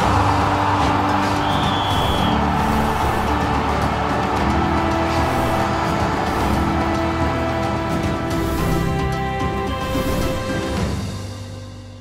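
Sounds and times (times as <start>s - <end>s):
background music: 0.0s - 12.0s
rushing whoosh: 1.3s - 10.7s.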